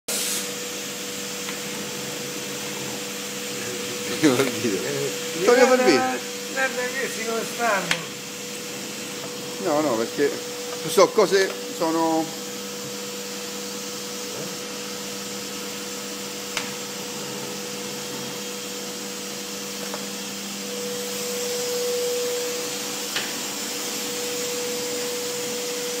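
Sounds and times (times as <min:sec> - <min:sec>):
hiss of air: 0:00.1 - 0:01.4
laminating machine whirring: 0:00.4 - 0:26.0.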